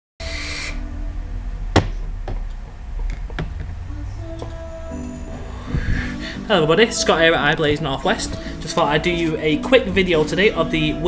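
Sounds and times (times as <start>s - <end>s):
air hissing through atomizer: 0.2s - 0.9s
faint background music: 0.2s - 11.0s.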